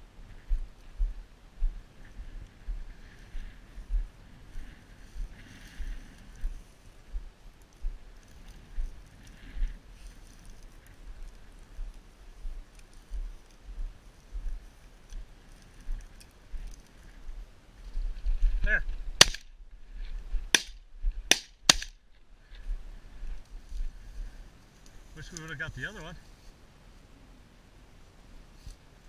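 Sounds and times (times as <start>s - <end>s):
wind rumble on microphone: 0.0s - 21.3s
shotgun shots: 19.2s - 19.5s, 20.5s - 22.0s.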